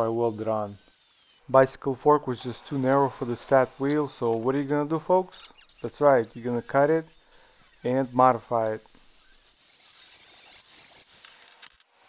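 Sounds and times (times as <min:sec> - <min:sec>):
angle grinder cutting steel: 0:02.3 - 0:11.8.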